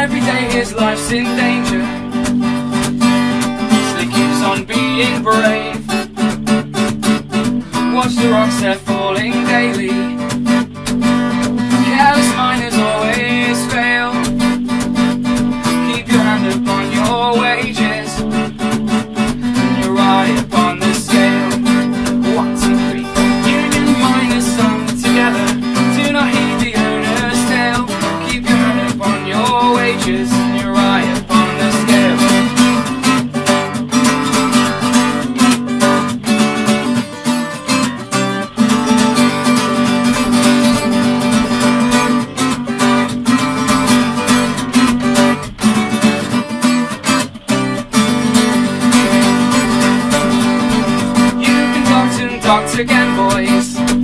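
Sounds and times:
acoustic guitar strumming: 0.0s - 54.0s.

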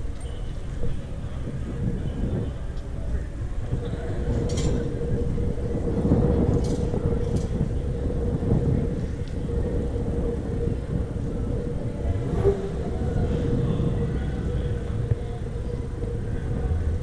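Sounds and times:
mid-pitched hum: 0.0s - 17.0s
vehicle rolling rumble: 0.0s - 17.0s.

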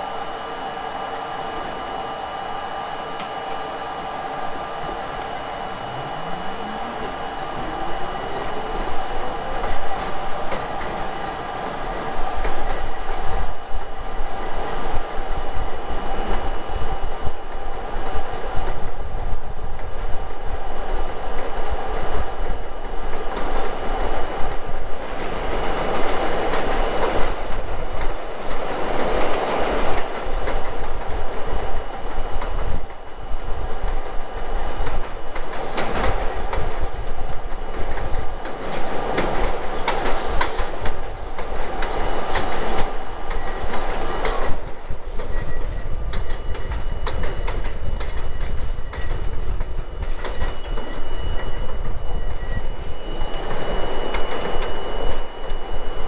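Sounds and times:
train wheels clattering over rails: 1.0s - 56.0s
high-pitched wheel squeal: 44.3s - 56.0s.

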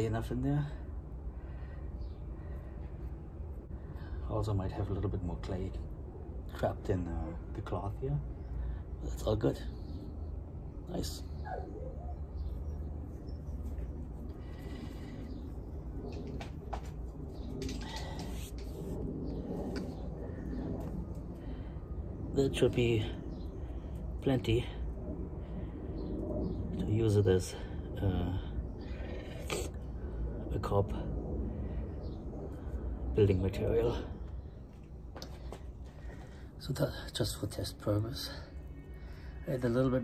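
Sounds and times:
steady low rumble: 0.0s - 40.0s.

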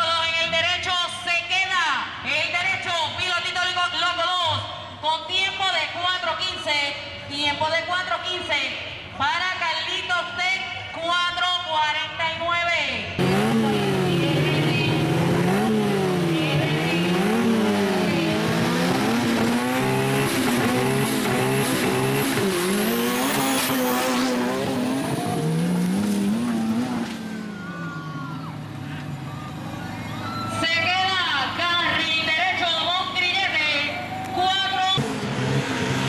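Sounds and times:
off-road engines revving: 13.2s - 36.0s.

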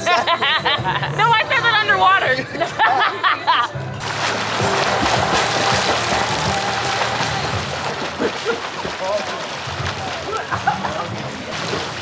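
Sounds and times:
background music: 0.0s - 12.0s
swimmers splashing water: 4.0s - 12.0s.

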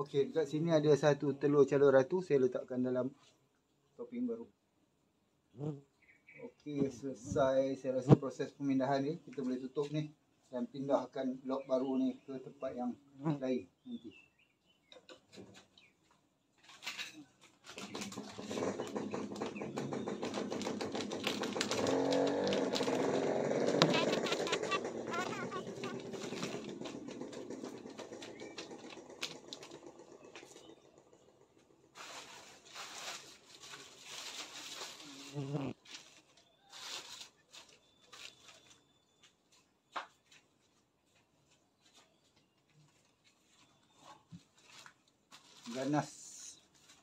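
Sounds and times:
plastic sheeting crinkling: 20.4s - 26.9s, 32.0s - 38.8s, 43.3s - 47.0s.

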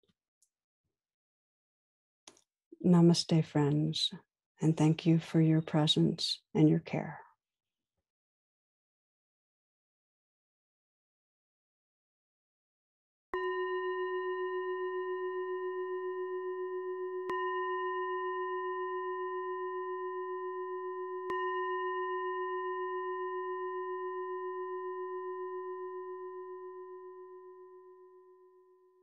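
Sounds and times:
singing bowl ringing: 13.4s - 29.0s.

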